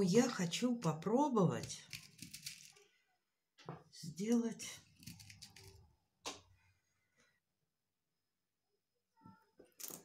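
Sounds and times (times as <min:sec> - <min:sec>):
metal pins handled in plastic box: 0:01.9 - 0:02.8.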